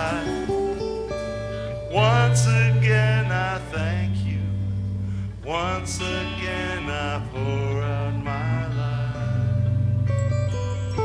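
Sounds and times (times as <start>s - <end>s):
man singing long notes: 0.0s - 10.1s
band with electric guitars: 0.0s - 11.0s.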